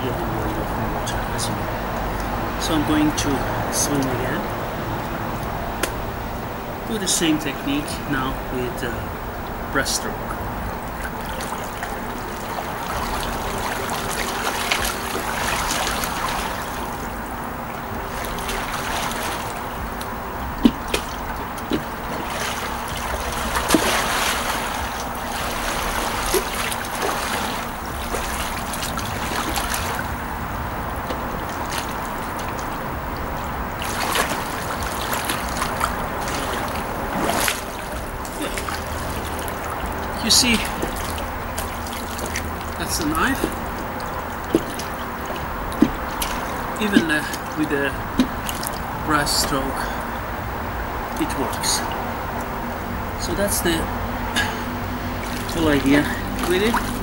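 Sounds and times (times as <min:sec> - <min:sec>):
sharp splashes: 0:00.0 - 0:57.0
water splashing from swimmer: 0:00.0 - 0:57.0.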